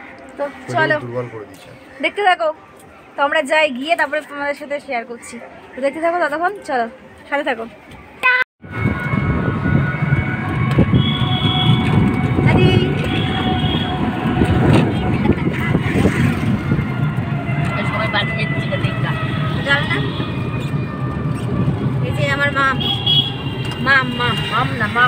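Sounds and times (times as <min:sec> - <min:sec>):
road rumble: 0:07.9 - 0:25.0
wind buffeting microphone: 0:08.6 - 0:24.3.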